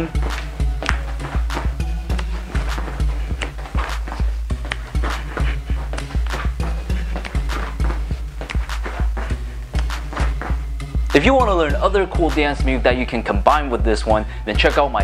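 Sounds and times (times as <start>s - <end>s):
hip hop beat with heavy bass: 0.0s - 15.0s.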